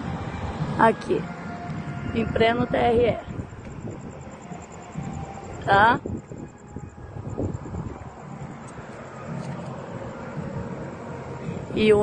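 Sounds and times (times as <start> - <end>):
outdoor background rumble: 0.0 - 12.0
wind on microphone: 0.0 - 12.0.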